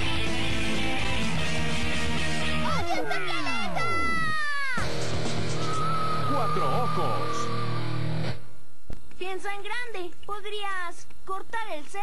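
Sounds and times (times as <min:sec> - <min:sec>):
rock theme music: 0:00.0 - 0:08.4.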